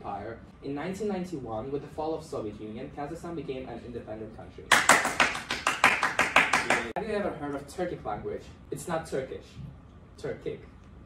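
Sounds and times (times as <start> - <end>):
hands clapping: 4.7 - 7.0.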